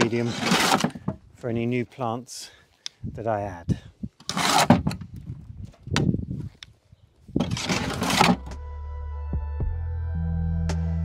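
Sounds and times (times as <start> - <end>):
shovel scraping compost: 0.0 - 1.0, 4.2 - 5.0, 7.4 - 8.5
background music: 8.1 - 11.0.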